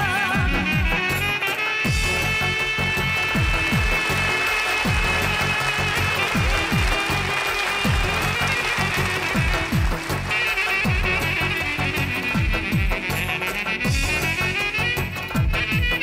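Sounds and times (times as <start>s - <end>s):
keyboard: 0.0s - 16.0s
saxophones: 0.0s - 16.0s
electronic drum beat: 3.2s - 11.4s.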